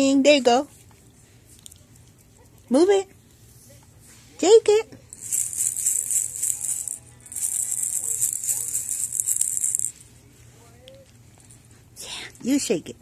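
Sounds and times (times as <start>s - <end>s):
plastic baby rattle shaken: 5.1s - 10.1s.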